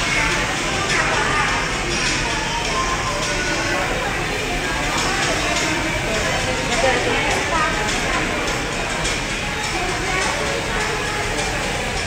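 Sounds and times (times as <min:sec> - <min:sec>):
background voices chattering: 0:00.0 - 0:12.0.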